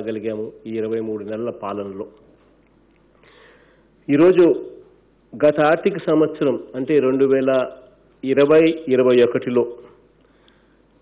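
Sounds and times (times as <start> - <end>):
man breathing in: 3.2 - 4.0, 10.2 - 11.0.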